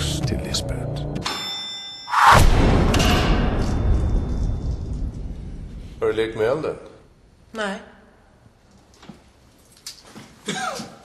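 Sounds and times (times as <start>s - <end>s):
doorbell ding: 1.2s - 2.2s
harsh bell clang: 1.2s - 2.3s, 2.9s - 5.2s.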